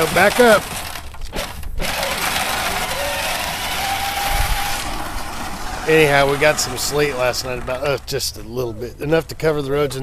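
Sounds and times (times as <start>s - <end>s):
electric motors whirring: 1.8s - 8.1s.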